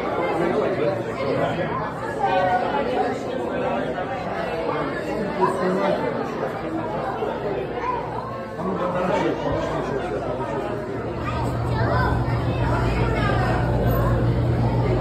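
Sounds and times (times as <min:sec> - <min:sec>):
babble of voices: 0:00.0 - 0:15.0.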